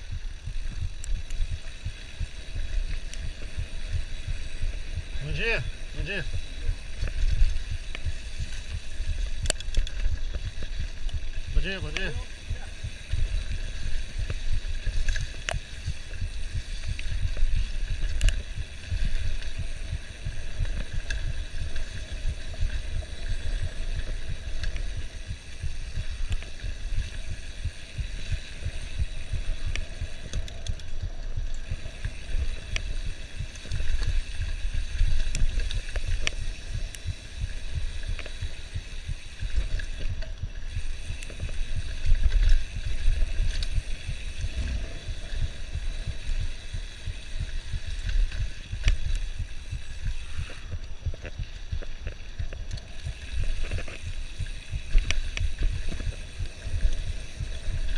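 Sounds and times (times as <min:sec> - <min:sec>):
bike clicks and rattles: 0:00.0 - 0:57.9.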